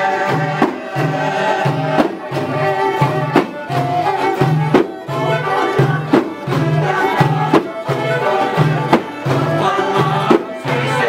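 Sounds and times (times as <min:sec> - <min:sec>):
folk dance melody instruments: 0:00.0 - 0:11.0
low drum beat: 0:00.0 - 0:11.0.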